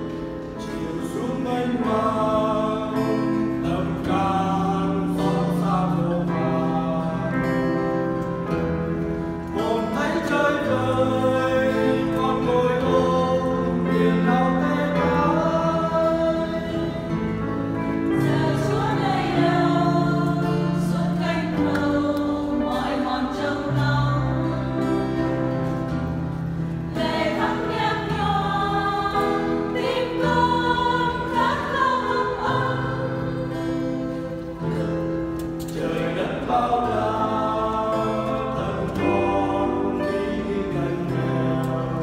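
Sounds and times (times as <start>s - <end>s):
acoustic guitar: 0.0s - 42.0s
choir singing a hymn: 0.0s - 42.0s.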